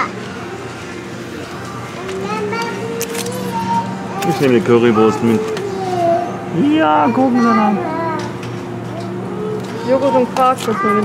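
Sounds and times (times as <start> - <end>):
steady low hum: 0.0 - 11.0
toddler sing-song vocalising: 2.0 - 4.4, 5.0 - 6.5, 7.4 - 11.0.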